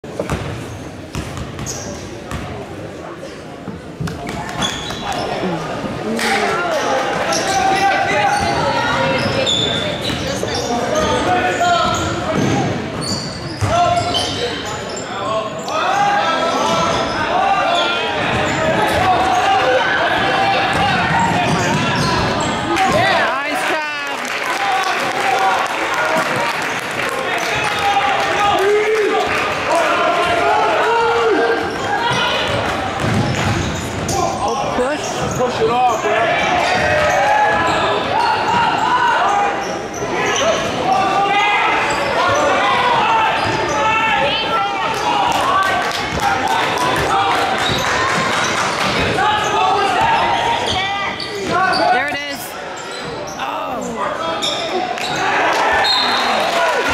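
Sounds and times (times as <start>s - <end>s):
people talking and calling out: 1.6s - 56.9s
basketball bouncing on wooden floor: 33.0s - 33.7s.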